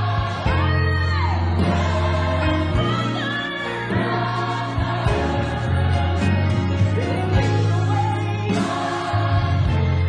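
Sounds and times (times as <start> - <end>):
choir singing: 0.0 - 10.0
instrumental accompaniment with bass line: 0.0 - 10.0.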